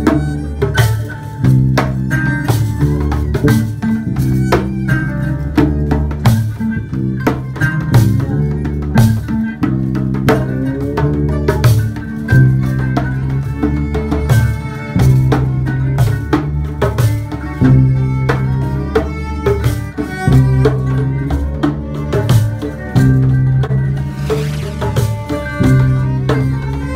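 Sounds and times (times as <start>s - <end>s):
djembe beaten by hand: 0.0s - 26.9s
kora plucked: 0.0s - 26.9s
violin playing: 0.0s - 26.9s
bass sustained low notes: 1.3s - 16.8s, 17.5s - 26.9s.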